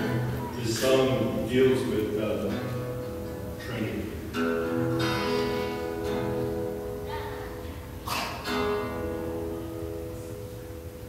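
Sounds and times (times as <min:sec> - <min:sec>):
acoustic guitar strumming: 0:00.0 - 0:11.0.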